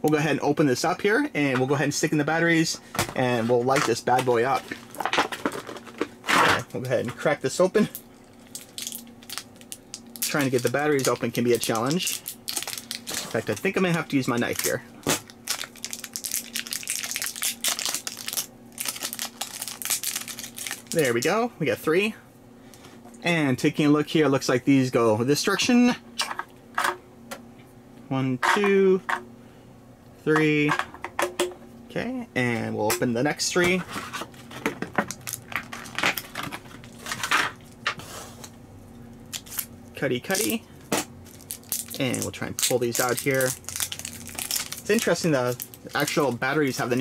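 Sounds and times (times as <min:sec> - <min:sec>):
faint steady hum: 0:00.0 - 0:47.0
plastic packaging crackling: 0:03.1 - 0:07.2, 0:07.8 - 0:21.4, 0:33.7 - 0:37.8, 0:41.3 - 0:47.0
plastic wrapping crinkling: 0:07.8 - 0:21.3, 0:33.8 - 0:37.8, 0:41.3 - 0:47.0.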